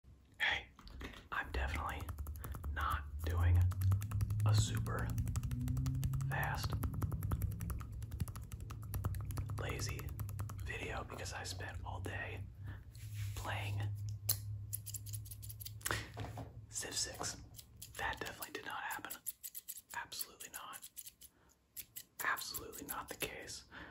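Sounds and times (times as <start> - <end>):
man whispering: 0.4 - 3.8, 4.4 - 5.2, 6.2 - 6.9, 9.5 - 12.6, 13.3 - 14.0, 16.7 - 17.4, 18.0 - 19.2, 20.0 - 20.9, 22.2 - 23.7
scissors snipping: 18.9 - 23.0.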